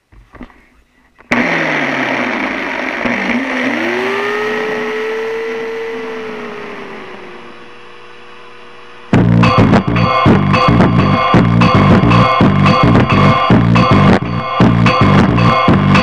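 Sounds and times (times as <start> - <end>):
chainsaw engine revving: 1.3 - 7.9.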